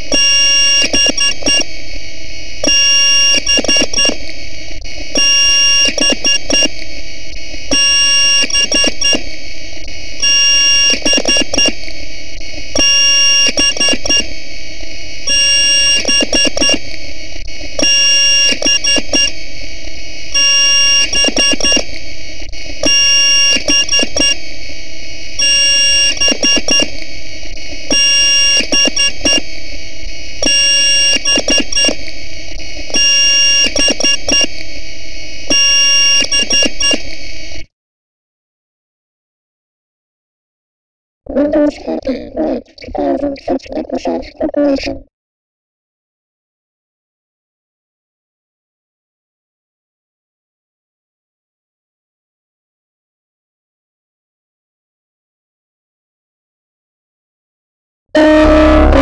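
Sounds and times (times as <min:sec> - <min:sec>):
harsh distorted buzzing: 0:00.0 - 0:37.7, 0:58.2 - 0:59.0
shrill alarm-like tones: 0:25.4 - 0:37.4, 0:58.2 - 0:59.0.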